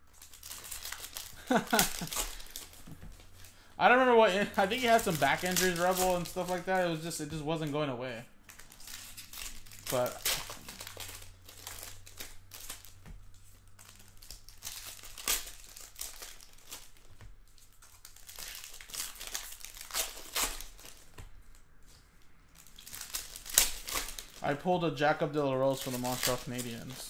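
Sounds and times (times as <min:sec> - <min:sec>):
wrapper crinkling and tearing: 0:00.0 - 0:27.0.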